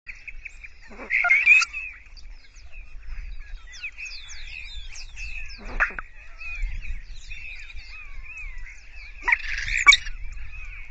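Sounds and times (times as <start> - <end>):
birds chirping and whistling: 0.1 - 10.9.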